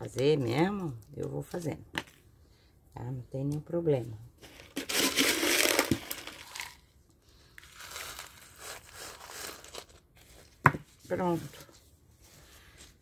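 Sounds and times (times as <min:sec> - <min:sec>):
pebbles and plastic pot crinkling: 0:00.0 - 0:02.3, 0:03.0 - 0:12.0.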